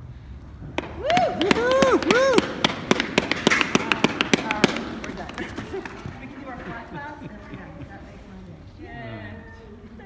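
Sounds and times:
hands clapping: 0.7 - 6.7.

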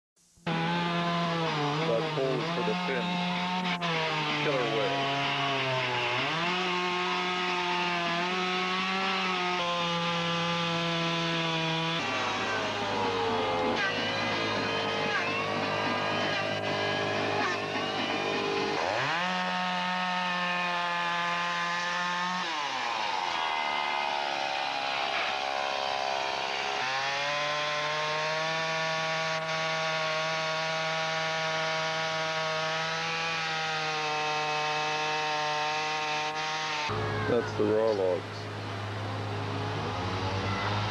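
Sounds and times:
chainsaw cutting log: 0.4 - 40.9.

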